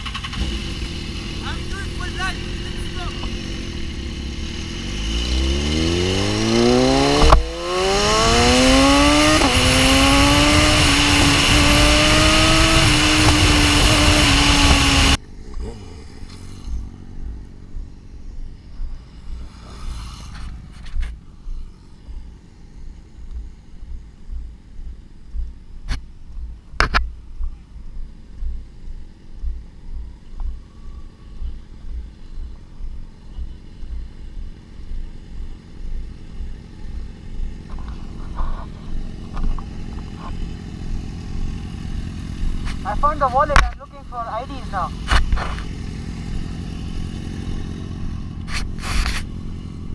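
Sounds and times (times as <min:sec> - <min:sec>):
motorcycle engine accelerating: 0:00.0 - 0:49.9
wind noise: 0:05.8 - 0:15.2
low irregular rumbling: 0:15.2 - 0:49.9.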